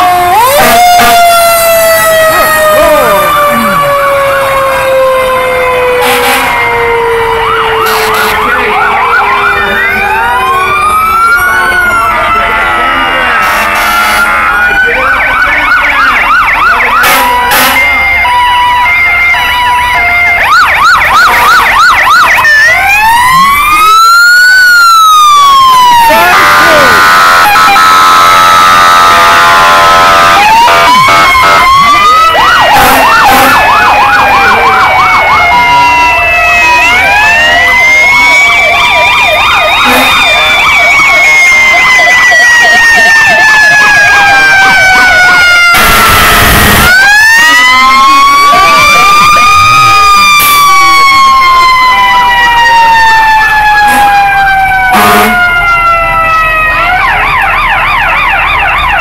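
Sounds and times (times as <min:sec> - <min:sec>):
fire truck sirens: 0:00.0 - 0:59.0.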